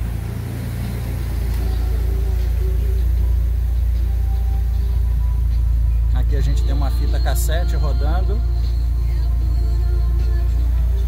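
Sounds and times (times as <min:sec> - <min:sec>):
car cabin rumble: 0:00.0 - 0:11.0.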